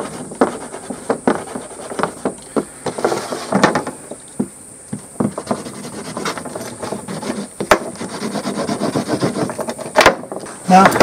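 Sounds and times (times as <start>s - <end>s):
burnisher rasping on leather: 0.0s - 2.2s, 5.3s - 9.9s.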